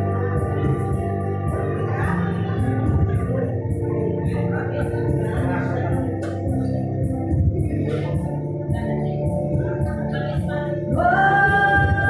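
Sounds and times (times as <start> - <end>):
backing music: 0.0 - 12.0.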